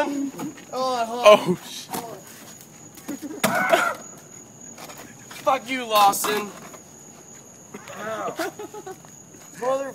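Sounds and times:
man crying out: 3.4 - 4.1.

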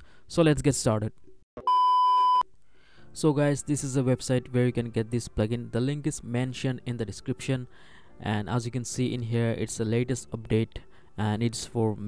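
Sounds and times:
high electronic beep: 1.6 - 2.4.

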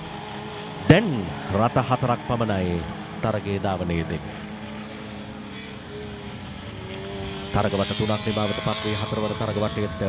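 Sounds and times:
race car engines droning: 0.0 - 10.0.

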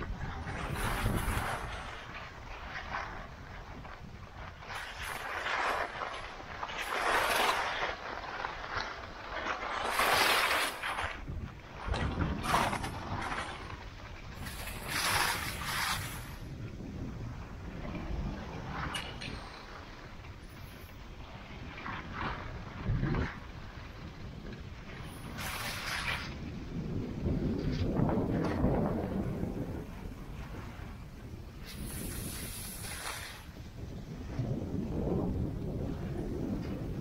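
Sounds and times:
skis scraping over snow: 0.0 - 37.0
wind rumbling on microphone: 0.0 - 37.0.

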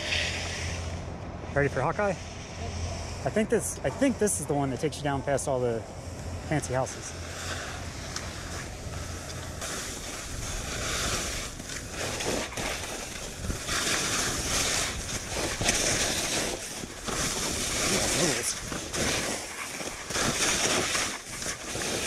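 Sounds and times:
wind rumbling on microphone: 5.9 - 22.0
skis scraping over snow: 6.4 - 22.0.

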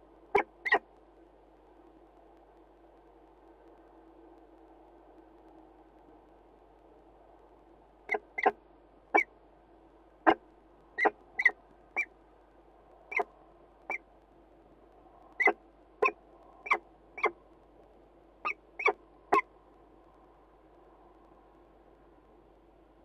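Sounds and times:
faint steady hiss: 0.0 - 23.0
bird short sharp calls: 0.4 - 0.8, 8.1 - 8.6, 11.0 - 12.1, 15.4 - 17.4, 18.4 - 19.5.

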